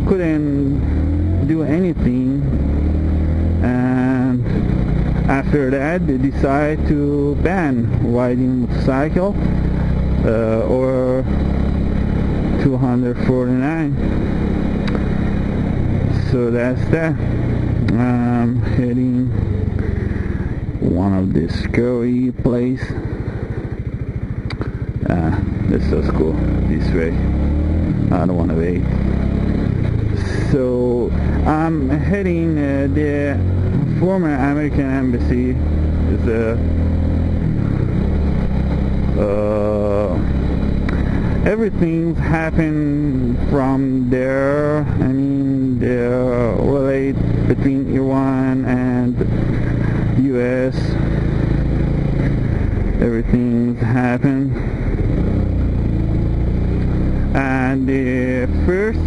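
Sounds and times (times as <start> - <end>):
motorcycle engine running: 0.0 - 59.0
wind and road noise: 0.0 - 59.0.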